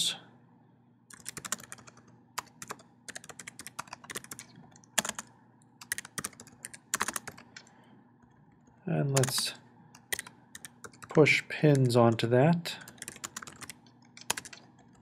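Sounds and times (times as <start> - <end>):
typing on computer keyboard: 1.1 - 9.4, 10.0 - 11.9, 12.8 - 15.0.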